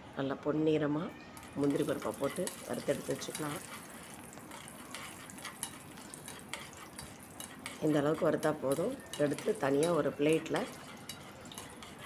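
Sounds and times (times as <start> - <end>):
faint frying sizzle: 1.3 - 12.0
metal spoon scraping a pan: 1.4 - 12.0.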